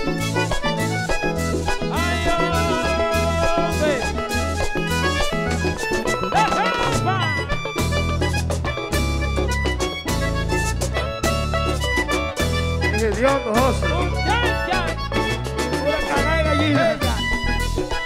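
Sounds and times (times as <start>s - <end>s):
button accordion melody: 0.0s - 18.0s
repeating bass line: 0.0s - 18.0s
steady percussion: 0.0s - 18.0s.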